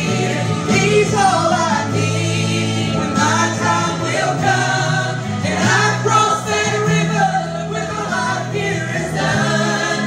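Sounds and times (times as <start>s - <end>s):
women singing gospel song: 0.0s - 10.0s.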